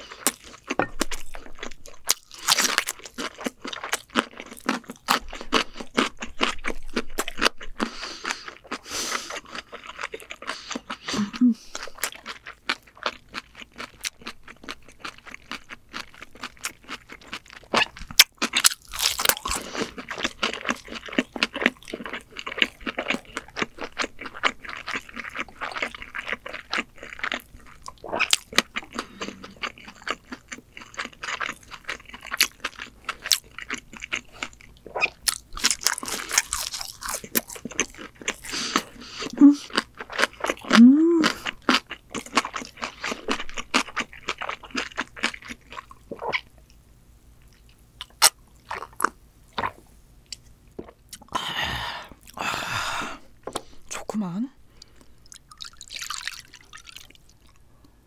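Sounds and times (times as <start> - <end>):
person humming: 11.2 - 11.7, 39.3 - 39.7, 40.8 - 41.4
crunchy bites and chewing: 11.8 - 46.7.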